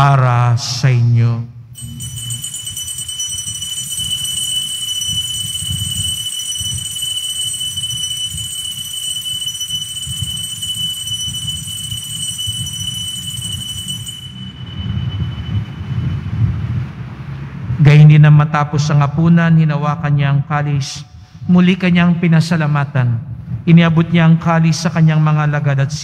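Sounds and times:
altar bells ringing: 1.8s - 16.4s
low rumble: 9.8s - 17.8s.

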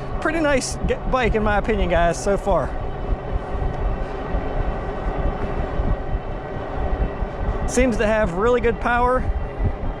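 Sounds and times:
wind rush and tyre noise: 0.0s - 10.0s.

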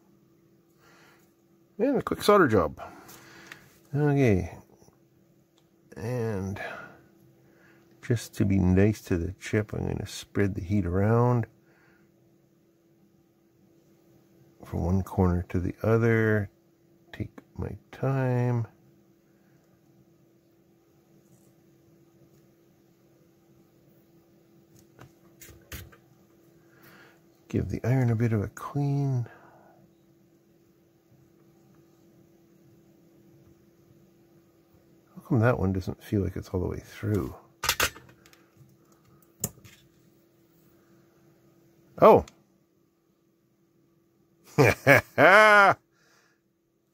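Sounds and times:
faint steady hum: 0.0s - 46.9s.

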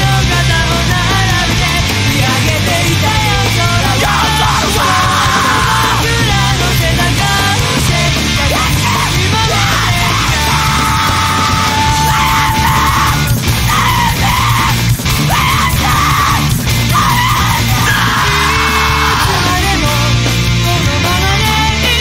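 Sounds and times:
loud heavy rock band: 0.0s - 22.0s
screamed vocals: 3.8s - 6.2s, 8.4s - 19.8s.

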